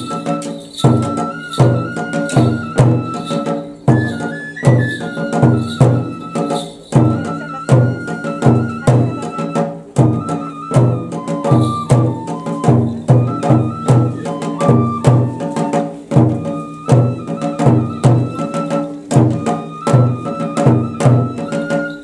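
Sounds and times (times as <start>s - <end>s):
bamboo flute long notes: 0.0s - 22.0s
steady drum beat: 0.0s - 22.0s.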